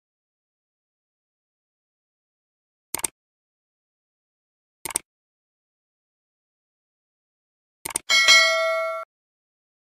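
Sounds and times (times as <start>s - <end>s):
bright notification ding: 8.1s - 9.1s.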